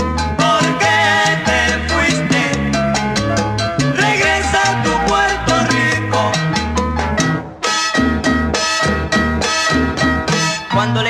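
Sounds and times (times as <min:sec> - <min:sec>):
instrumental salsa music: 0:00.0 - 0:11.0.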